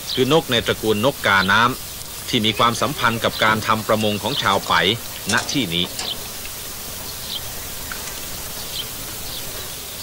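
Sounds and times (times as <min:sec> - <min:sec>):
steady hiss-like background ambience: 0:00.0 - 0:10.0.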